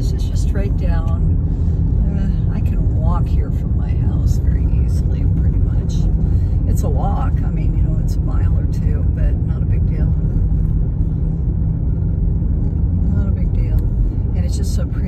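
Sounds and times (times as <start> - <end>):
low rumble of tyres and engine: 0.0 - 15.0.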